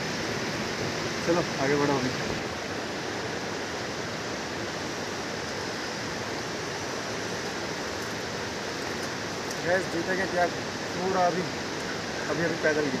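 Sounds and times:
river rushing over rocks: 0.0 - 13.0.

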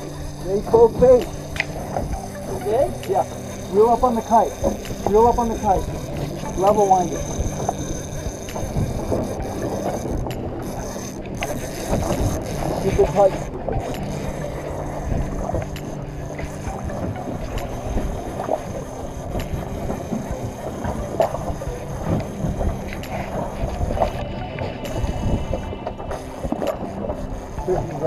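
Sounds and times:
boat engine humming: 0.0 - 28.0
water noise: 0.0 - 28.0
wind: 0.0 - 28.0.

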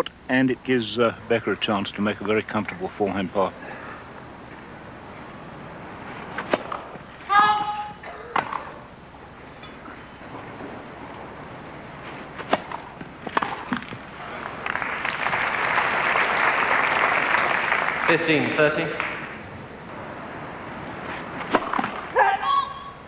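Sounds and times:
tennis ball struck by rackets: 6.3 - 7.0, 12.4 - 14.1, 21.1 - 22.2
crowd applauding: 14.2 - 19.4.

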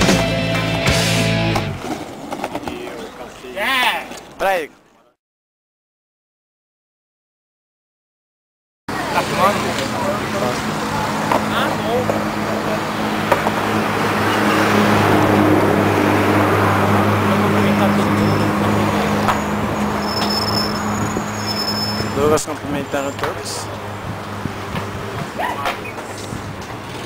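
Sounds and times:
people talking: 8.9 - 12.9, 17.3 - 19.4, 22.1 - 23.8.

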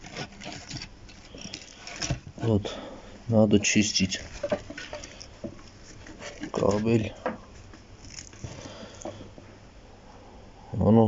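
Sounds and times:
cable rustling: 0.0 - 2.7, 3.5 - 9.5.

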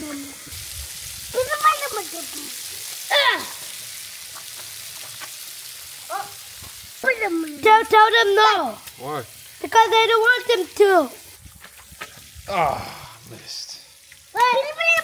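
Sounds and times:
water hissing from spray: 0.0 - 15.0
children calling out: 1.3 - 3.7, 14.3 - 15.0.

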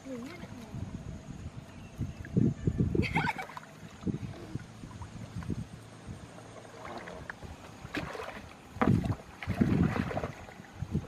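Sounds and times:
muddy water splashing: 0.0 - 11.0.

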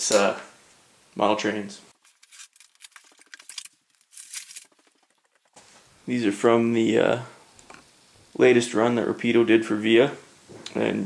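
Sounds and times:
bubble wrap and paper crinkling: 1.9 - 5.8.

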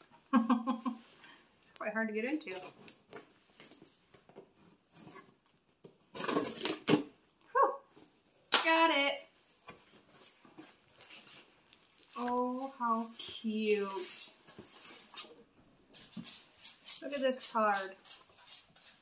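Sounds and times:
tape and cardboard ripping: 6.1 - 7.2
knife slicing packing tape: 6.2 - 7.1.

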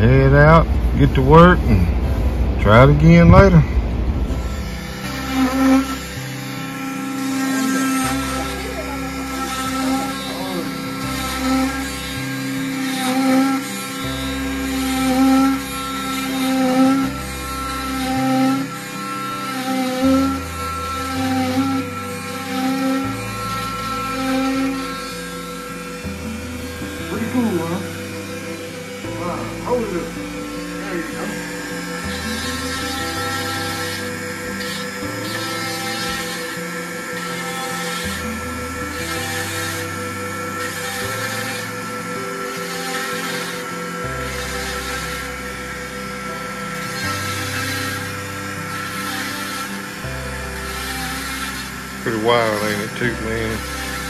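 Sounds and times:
cast saw whining: 0.0 - 54.0.

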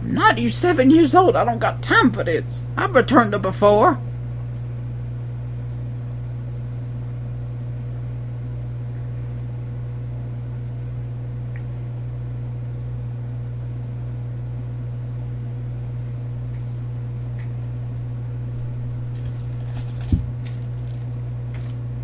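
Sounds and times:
low hum: 0.0 - 22.0.

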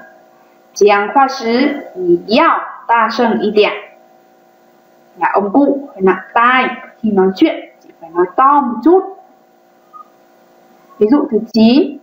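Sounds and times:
faint electrical hum: 0.0 - 12.0
person speaking: 0.8 - 3.9, 5.2 - 9.3.

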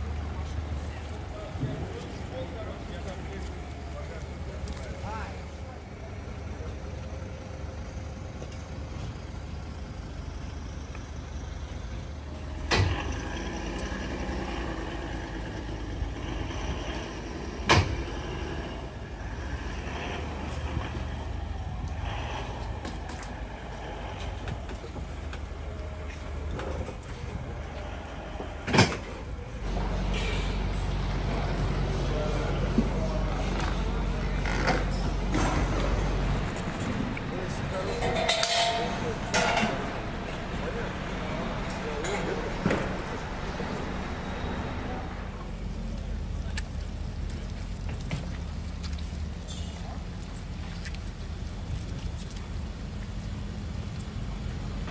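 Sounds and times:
diesel engine running: 0.0 - 51.6.

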